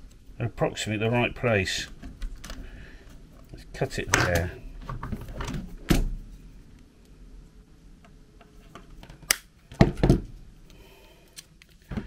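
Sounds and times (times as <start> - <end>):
quiet handling: 1.2 - 7.2.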